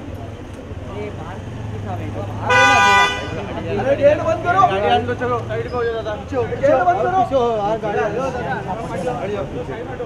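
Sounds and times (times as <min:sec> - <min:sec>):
crowd chatter: 0:00.0 - 0:10.0
car horn honking: 0:02.5 - 0:03.5.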